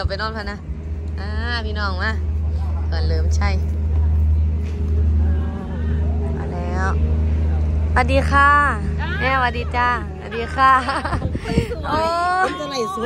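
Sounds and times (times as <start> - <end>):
low engine-like hum: 0.0 - 13.0
woman saying hello: 11.9 - 13.0.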